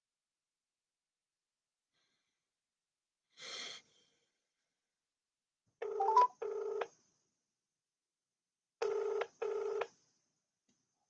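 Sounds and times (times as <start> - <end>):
telephone ringback tone: 5.8 - 6.8, 8.8 - 9.8.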